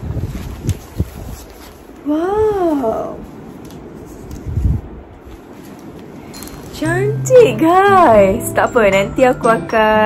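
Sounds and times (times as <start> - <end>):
heavy cloth rustling: 0.0 - 8.3.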